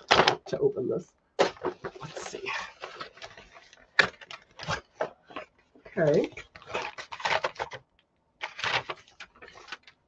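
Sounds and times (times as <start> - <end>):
paper and cardboard rustling: 1.4 - 7.8, 8.4 - 10.0.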